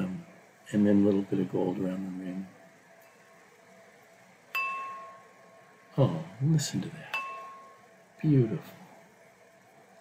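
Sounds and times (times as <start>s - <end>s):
cocktail glass ringing: 4.5s - 5.4s, 7.1s - 7.8s.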